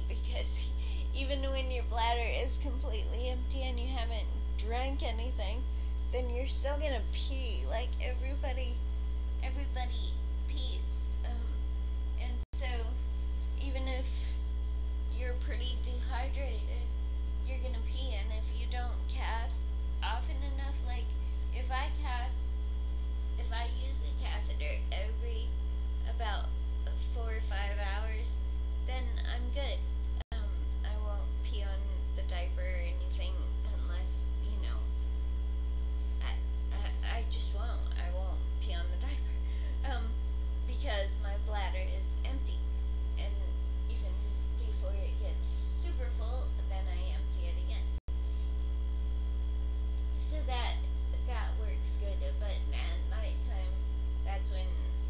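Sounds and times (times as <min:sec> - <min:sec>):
electrical mains hum: 0:00.0 - 0:55.0.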